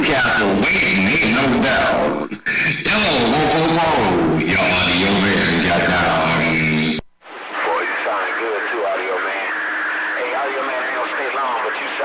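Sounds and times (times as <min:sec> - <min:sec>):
person talking over radio: 0:00.0 - 0:07.0, 0:07.6 - 0:09.6, 0:10.2 - 0:12.0
hissy radio transmission with voice: 0:00.0 - 0:12.0.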